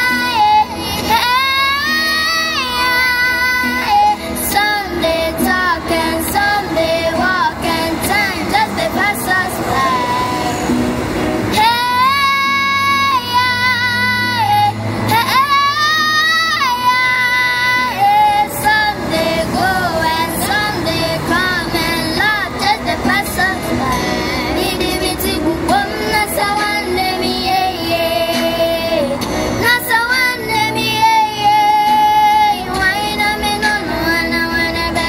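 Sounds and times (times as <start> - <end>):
child singing: 0.0 - 10.4, 11.6 - 35.0
backing music: 0.0 - 35.0.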